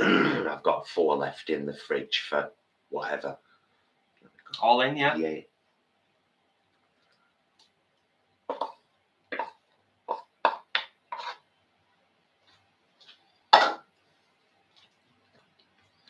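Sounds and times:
wooden spoon scraping plastic bowl: 11.1 - 11.4.

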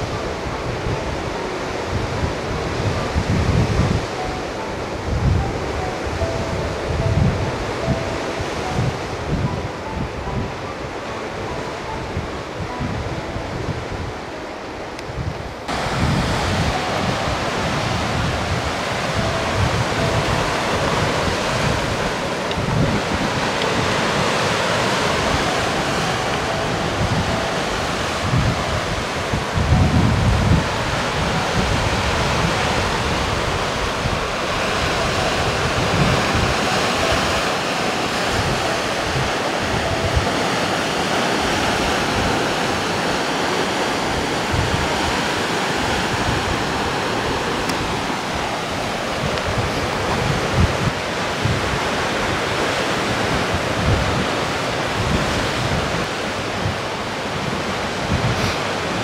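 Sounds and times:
wind buffeting microphone: 0.0 - 59.0
waves breaking over rocks: 15.5 - 59.0.

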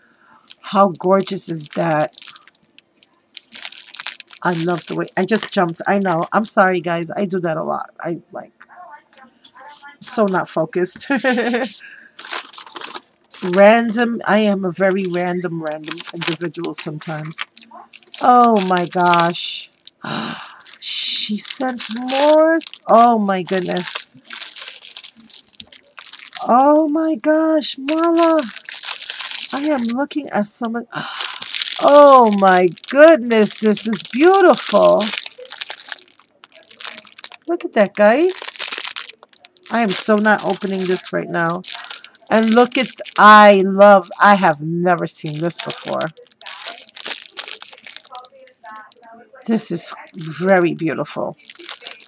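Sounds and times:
cellophane bag crinkling: 0.0 - 6.5, 9.6 - 27.0, 27.6 - 52.0
paper and packaging rustling: 0.5 - 6.5, 9.5 - 14.1, 14.7 - 26.9, 27.6 - 52.0.

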